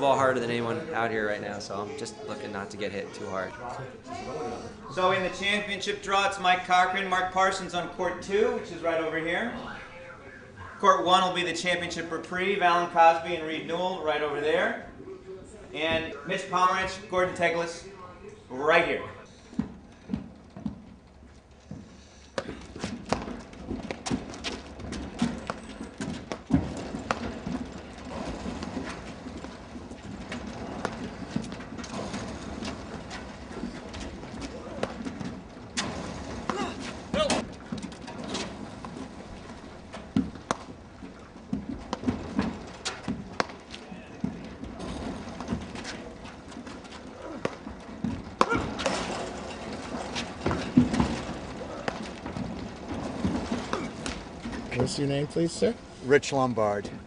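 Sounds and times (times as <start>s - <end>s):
ball bouncing on court: 22.4s - 29.6s.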